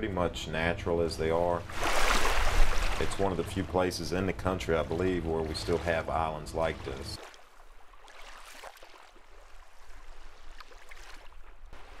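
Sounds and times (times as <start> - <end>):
low steady rumble: 0.0 - 1.8, 2.4 - 7.1
water splashing against boat hull: 1.6 - 12.0.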